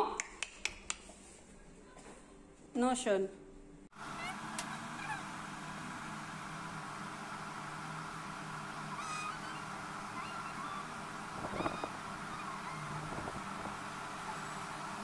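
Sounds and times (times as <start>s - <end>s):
steady background hum: 0.0s - 15.0s
short high bird calls: 8.8s - 13.2s.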